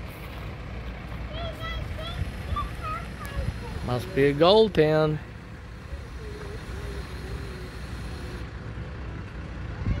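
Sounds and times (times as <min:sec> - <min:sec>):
faint wavering engine whine: 0:00.0 - 0:10.0
road traffic rumble: 0:00.0 - 0:10.0.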